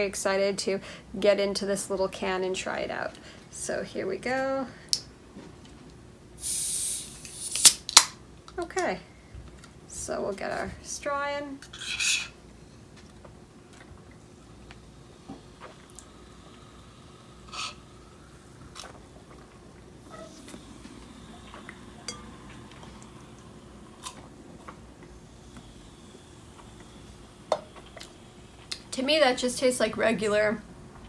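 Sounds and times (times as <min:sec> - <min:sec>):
sipping soda through a straw: 0:06.4 - 0:07.8.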